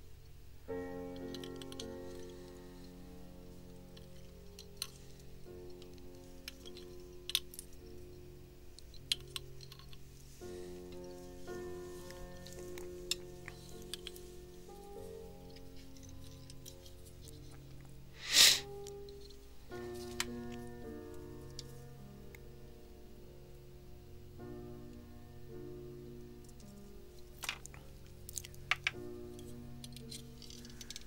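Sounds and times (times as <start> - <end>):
calm instrumental music: 0.0 - 31.0.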